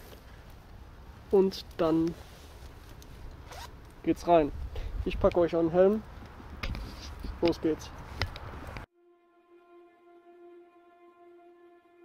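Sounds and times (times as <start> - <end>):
zipper being pulled: 3.5 - 3.7.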